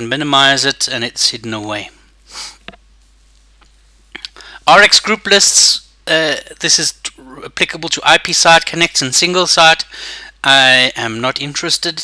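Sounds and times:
person breathing: 2.3s - 2.7s, 4.3s - 4.7s, 9.9s - 10.4s.

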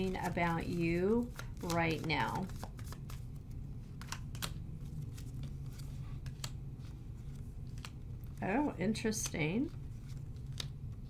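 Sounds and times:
cards being shuffled: 0.0s - 11.0s
low steady hum: 0.0s - 11.0s.

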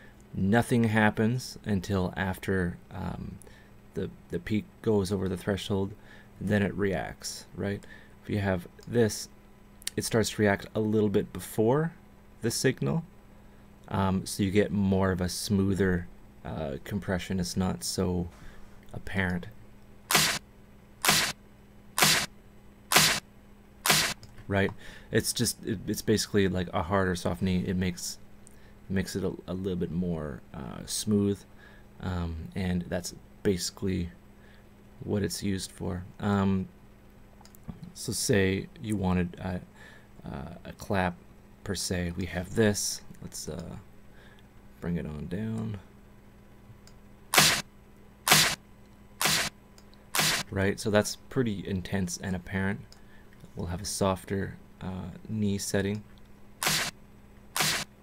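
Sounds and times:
compressed drum machine clap: 20.1s - 20.4s, 21.0s - 21.4s, 22.0s - 22.3s, 22.9s - 23.2s, 23.9s - 24.8s, 47.4s - 47.6s, 48.3s - 48.6s.

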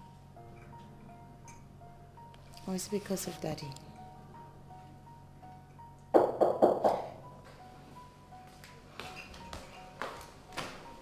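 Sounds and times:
soft background music: 0.0s - 11.0s
knocks on a door: 6.2s - 7.1s.

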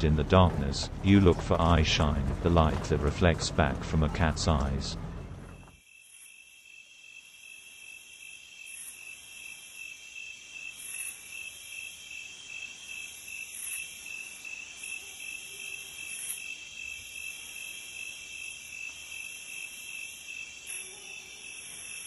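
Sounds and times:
crickets and insects trilling: 5.8s - 22.0s.

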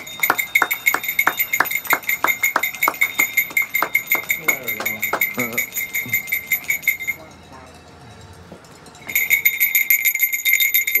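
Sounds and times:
hand bell ringing rapidly: 0.0s - 11.0s.

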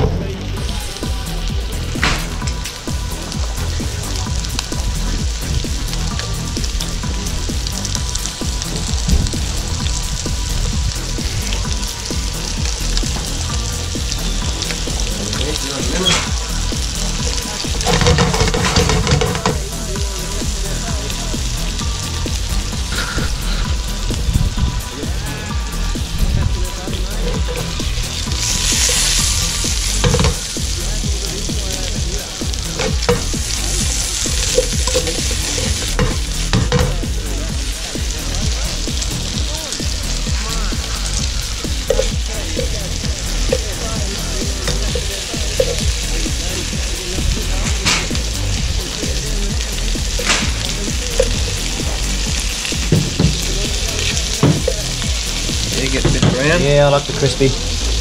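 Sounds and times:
fish sizzling in butter: 0.2s - 58.0s.

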